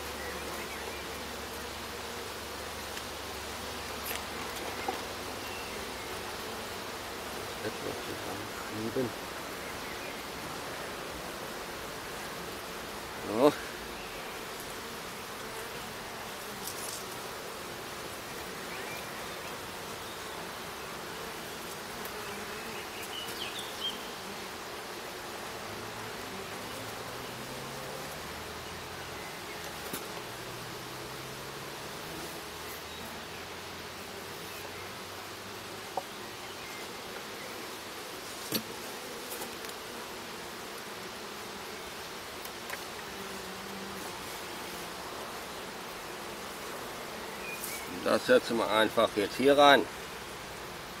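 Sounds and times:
faint clicks of hive boxes: 0:00.0 - 0:31.1, 0:34.3 - 0:51.0
honeybees buzzing: 0:00.0 - 0:51.0.

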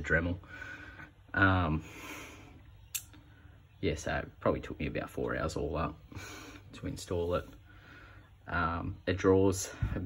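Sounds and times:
man talking: 0:00.0 - 0:00.4, 0:01.3 - 0:01.9, 0:03.8 - 0:06.1, 0:06.7 - 0:07.6, 0:08.5 - 0:10.0.

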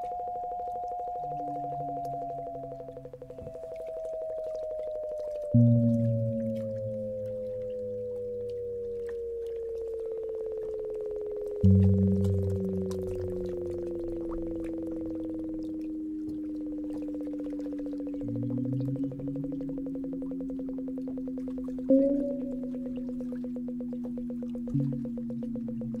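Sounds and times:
steady sine tone: 0:00.0 - 0:26.0
tone sliding down in pitch: 0:00.0 - 0:26.0
lower stepping tones: 0:05.4 - 0:26.0.

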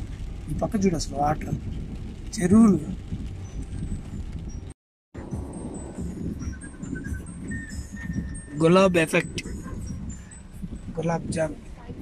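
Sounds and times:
car driving through floodwater: 0:00.0 - 0:04.6, 0:05.2 - 0:12.0.

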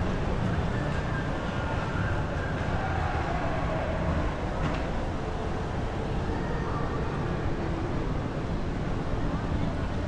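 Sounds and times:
crowd: 0:00.0 - 0:10.0.

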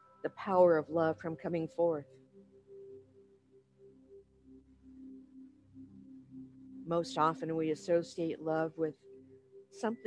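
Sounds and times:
meditation drone music: 0:00.0 - 0:10.0.

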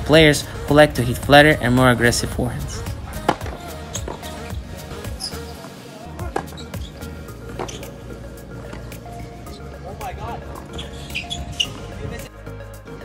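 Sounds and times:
background music: 0:00.0 - 0:13.0
tennis balls struck with racket: 0:02.9 - 0:04.3, 0:06.2 - 0:08.0
tennis balls bouncing on court: 0:03.2 - 0:04.3, 0:06.2 - 0:08.0, 0:08.6 - 0:09.0.

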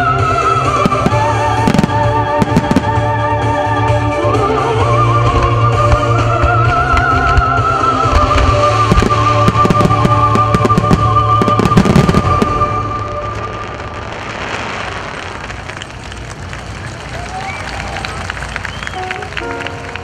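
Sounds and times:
fireworks bangs and crackles: 0:00.0 - 0:04.1, 0:05.0 - 0:20.0.

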